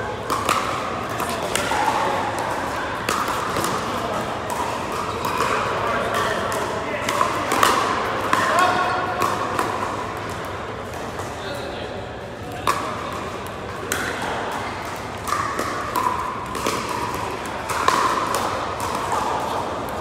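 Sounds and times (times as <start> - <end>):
murmur of voices: 0.0 - 20.0
paddles striking plastic balls: 0.2 - 11.4, 12.4 - 20.0.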